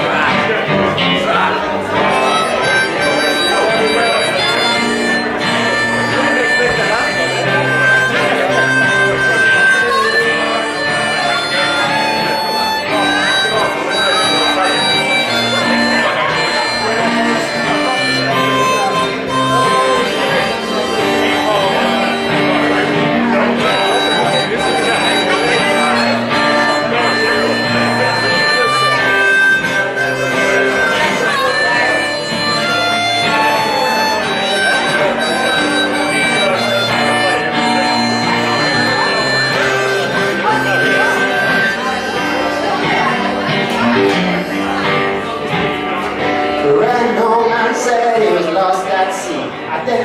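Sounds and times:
acoustic guitar strumming: 0.0 - 50.0
harmonica sustained notes: 0.0 - 50.0.

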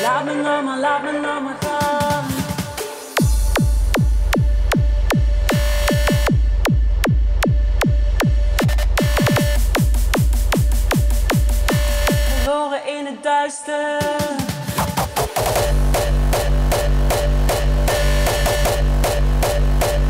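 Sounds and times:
person singing: 0.0 - 3.6, 12.1 - 16.4
electronic dance music: 0.0 - 12.6, 13.7 - 20.0.

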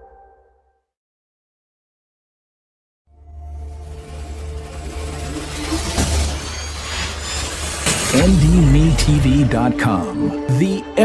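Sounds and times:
low drone: 3.1 - 11.0.

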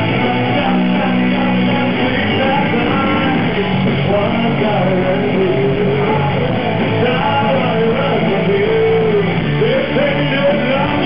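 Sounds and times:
live rock band playing: 0.0 - 11.0
man singing: 0.0 - 11.0.

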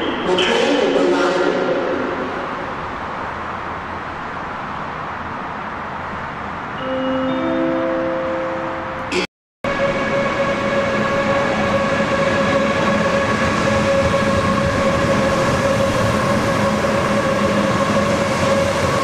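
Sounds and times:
train wheels rumbling on rails: 9.7 - 19.0.

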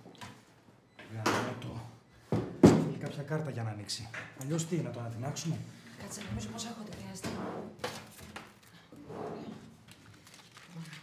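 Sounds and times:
paper rustling: 9.8 - 11.0.

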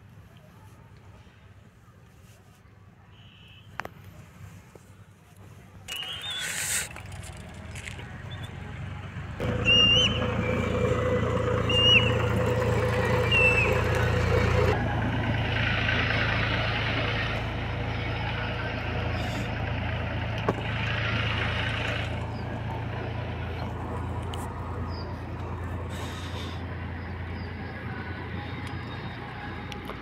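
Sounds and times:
vehicle engine humming: 4.9 - 30.0.

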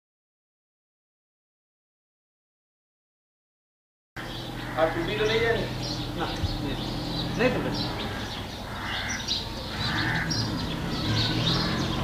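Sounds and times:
birds chirping and calling: 4.2 - 12.0.

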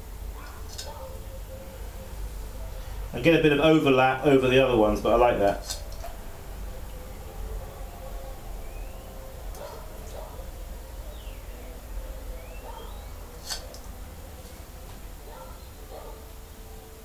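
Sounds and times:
low hum: 0.0 - 17.0
faint high chirps: 8.2 - 9.7, 10.9 - 13.4.

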